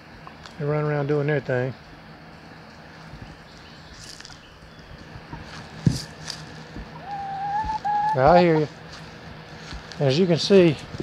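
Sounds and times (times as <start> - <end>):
rustles: 2.4 - 11.0
chicken calling: 6.8 - 9.0.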